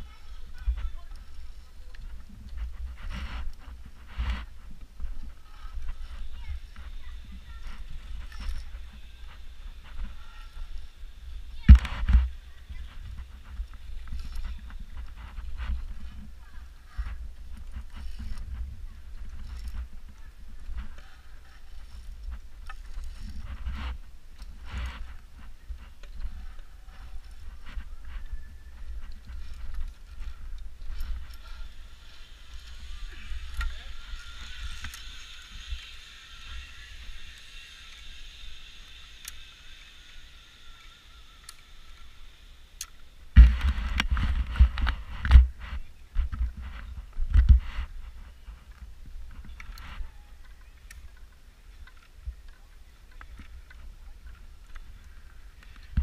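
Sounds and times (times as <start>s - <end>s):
camera handling rumble: 42.8s - 52.2s.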